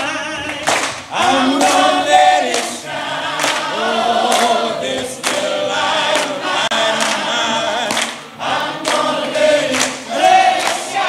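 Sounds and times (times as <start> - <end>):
choir singing long held notes: 0.0 - 11.0.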